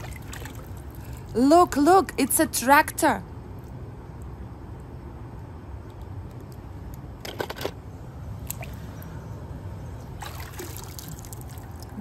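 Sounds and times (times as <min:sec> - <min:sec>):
water splashing and dripping: 0:00.0 - 0:01.4, 0:08.4 - 0:08.9, 0:10.1 - 0:12.0.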